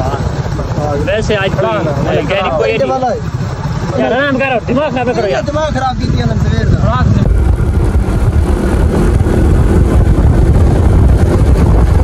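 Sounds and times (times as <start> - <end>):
men talking: 0.0 - 7.6
wind rumble buffeting microphone: 0.0 - 12.0.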